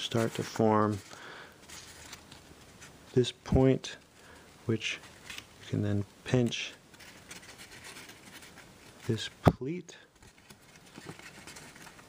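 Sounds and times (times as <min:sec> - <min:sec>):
paper rustling and crackling: 0:00.0 - 0:04.1, 0:04.9 - 0:12.0.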